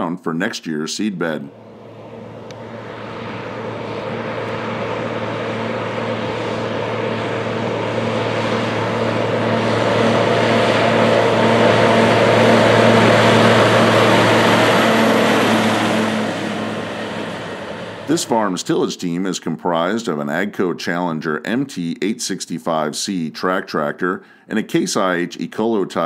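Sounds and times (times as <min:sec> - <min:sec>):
tractor diesel engine running: 0:01.5 - 0:18.5.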